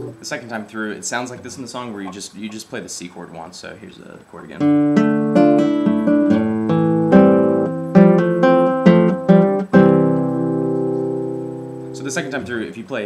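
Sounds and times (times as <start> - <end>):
classical guitar fingerpicking: 0.0 - 0.3, 4.6 - 12.5.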